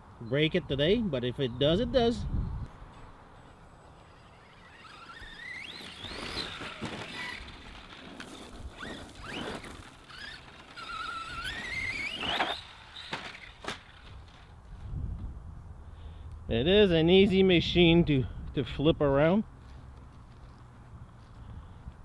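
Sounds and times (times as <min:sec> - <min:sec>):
toy truck rattling over grass: 0:03.4 - 0:14.7
electric motor whining: 0:03.6 - 0:14.4.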